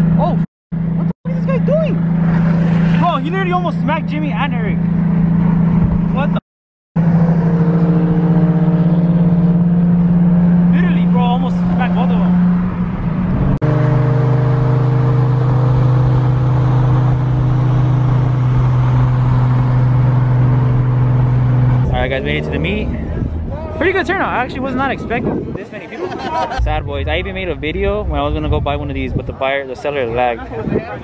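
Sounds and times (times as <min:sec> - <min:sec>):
car exhaust drone from cabin: 0:07.0 - 0:23.5.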